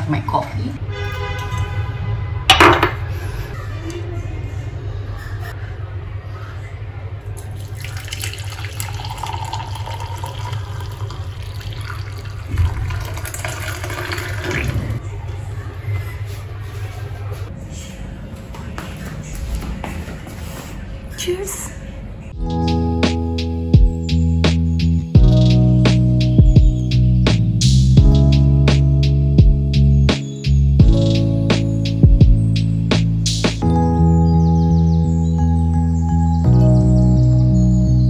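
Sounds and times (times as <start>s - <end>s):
soft footsteps: 18.2s - 21.0s.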